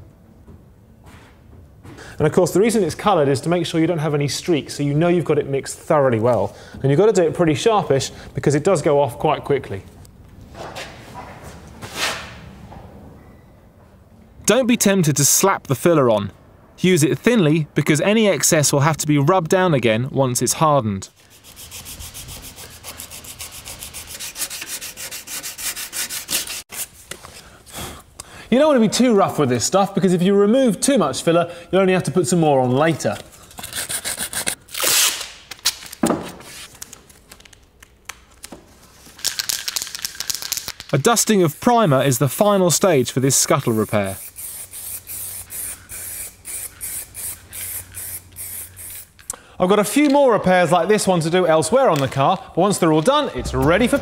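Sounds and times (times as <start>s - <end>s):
masking tape tearing: 33.5s - 38.5s.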